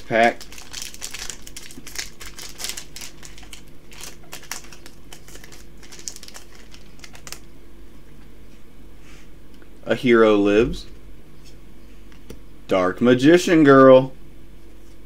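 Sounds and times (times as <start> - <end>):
foil wrapper crinkling: 0.0 - 7.5.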